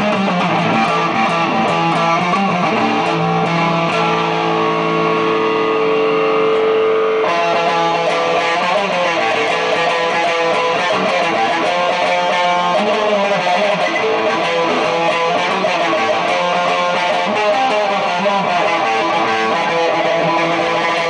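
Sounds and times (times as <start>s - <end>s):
electric guitar through amplifier: 0.0s - 21.0s.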